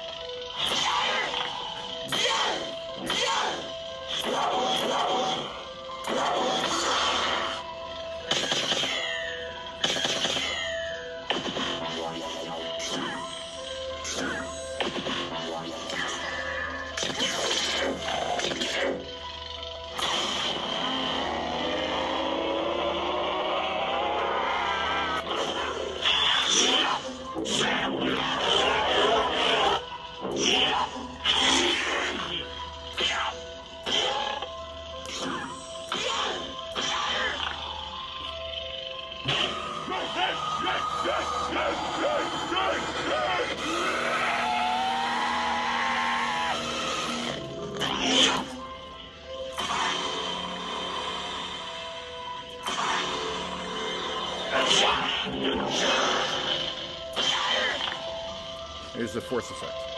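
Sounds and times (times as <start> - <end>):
electronic lightsaber hum: 0.0 - 59.9.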